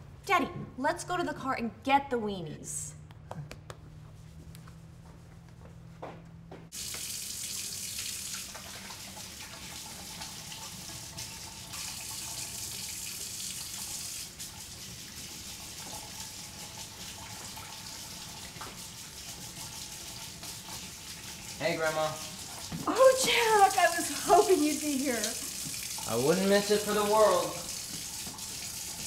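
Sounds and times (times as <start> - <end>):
faucet water splashing on dishes: 6.7 - 29.0.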